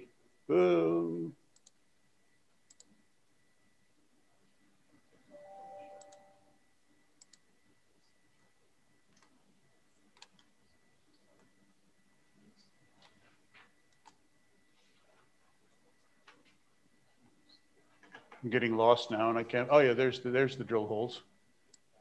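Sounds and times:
faint steady tone: 0.0s - 22.0s
computer mouse clicks: 1.5s - 1.8s, 2.7s - 3.0s, 7.2s - 7.4s, 10.1s - 10.5s, 13.9s - 14.2s.

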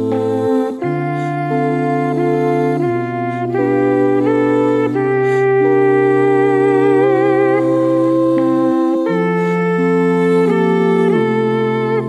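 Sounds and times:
a cappella group singing harmony: 0.0s - 12.0s.

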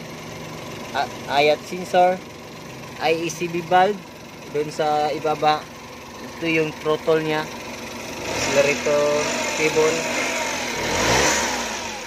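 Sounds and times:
car engine revving: 7.9s - 12.0s.

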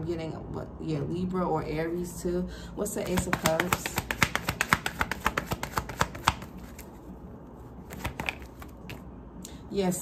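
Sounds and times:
cards being shuffled: 3.0s - 7.1s, 7.8s - 9.1s.

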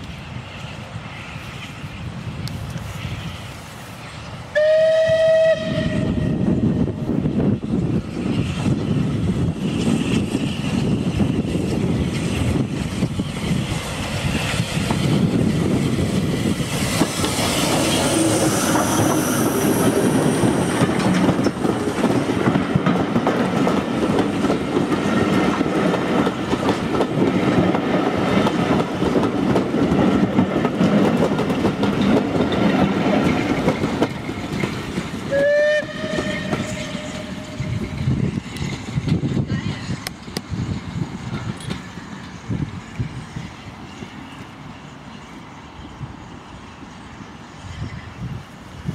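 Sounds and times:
steam train rumble: 0.0s - 48.9s
short steam whistle: 4.6s - 6.4s, 35.3s - 37.6s
wheels clattering over rail joints: 14.5s - 35.3s.

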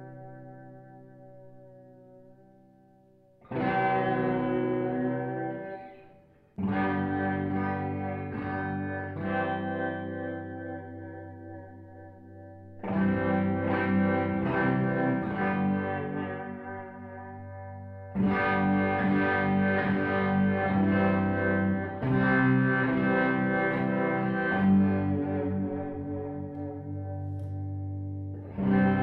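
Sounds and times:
guitar chords ringing: 0.0s - 29.0s.

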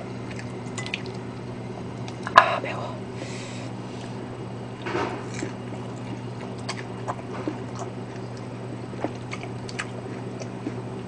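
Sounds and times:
soft chewing: 3.8s - 11.0s.

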